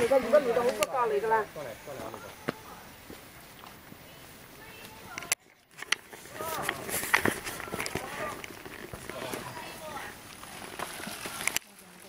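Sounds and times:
people's voices: 0.0s - 12.0s
footsteps crunching on leaves: 5.9s - 12.0s.

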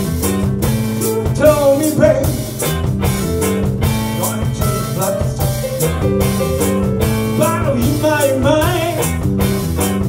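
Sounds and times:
blues band playing live: 0.0s - 10.0s
man singing: 1.0s - 2.6s, 3.8s - 6.1s, 7.2s - 9.2s.

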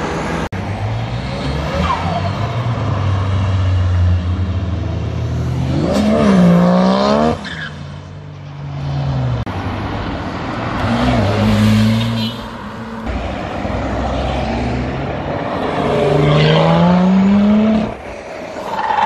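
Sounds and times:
car engines revving: 0.0s - 19.0s.

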